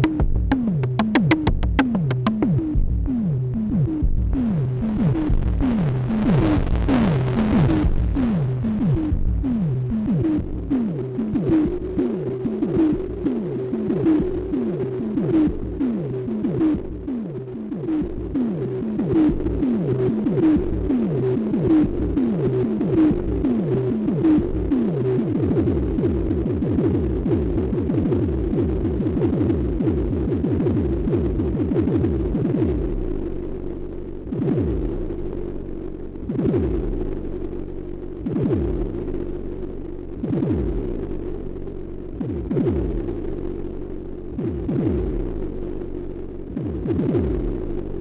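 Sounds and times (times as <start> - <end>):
pitched synth drum hits: 0.0 - 3.1.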